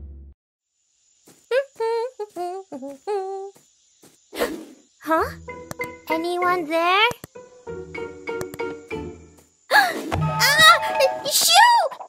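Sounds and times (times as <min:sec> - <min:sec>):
boy humming a tune: 0:01.5 - 0:03.6.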